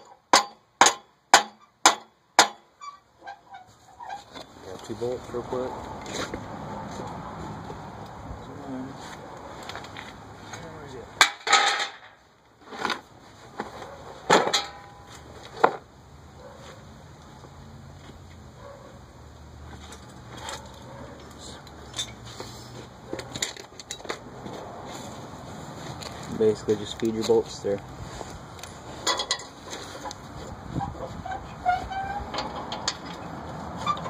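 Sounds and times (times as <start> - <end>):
sharp knocks on metal: 0.0 - 2.7
metal tools clanking: 11.2 - 12.2, 14.3 - 15.3, 19.8 - 22.4, 23.2 - 24.2, 29.0 - 30.1, 31.3 - 33.3.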